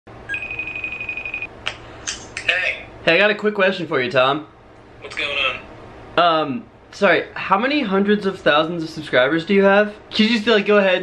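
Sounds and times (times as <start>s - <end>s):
fluttering high electronic tone: 0.2s - 1.5s.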